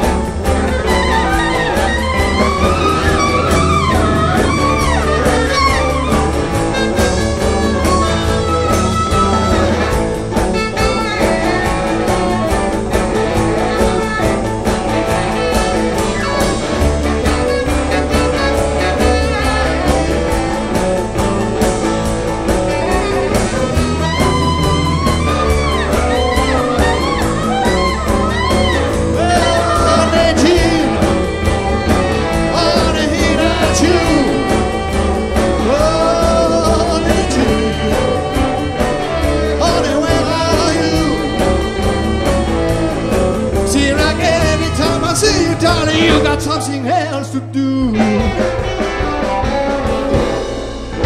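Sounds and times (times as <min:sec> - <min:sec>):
rock band playing: 0:00.0 - 0:51.0
saxophone: 0:00.0 - 0:51.0.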